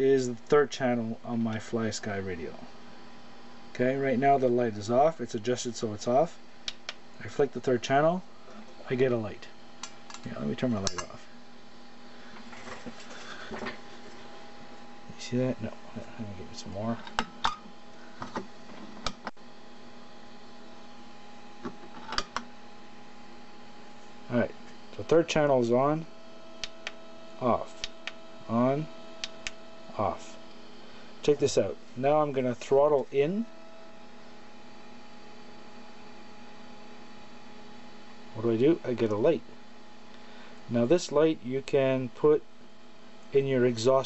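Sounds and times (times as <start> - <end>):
steady electrical hum: 0.0 - 44.0.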